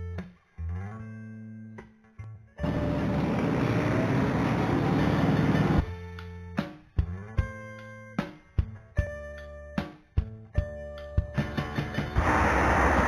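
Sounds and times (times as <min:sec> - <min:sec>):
loud rushing noise: 0:12.2 - 0:13.0.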